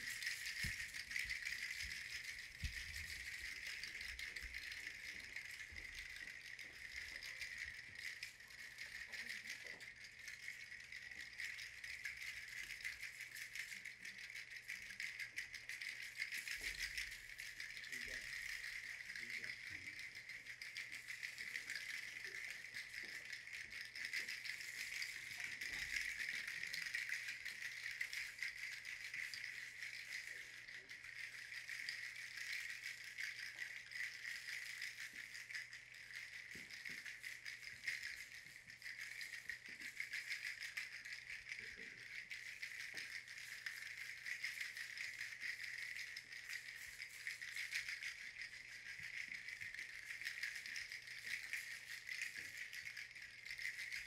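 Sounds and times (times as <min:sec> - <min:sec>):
shaker rattling: 0:00.0 - 0:54.0.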